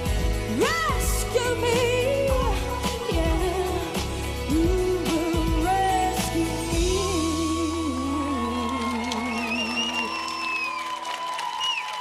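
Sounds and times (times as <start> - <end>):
dance-pop backing track: 0.0 - 10.4
woman singing: 0.0 - 10.6.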